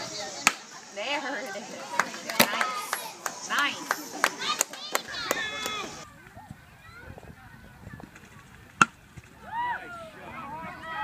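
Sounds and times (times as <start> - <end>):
voices shouting: 0.0 - 7.7, 9.3 - 11.0.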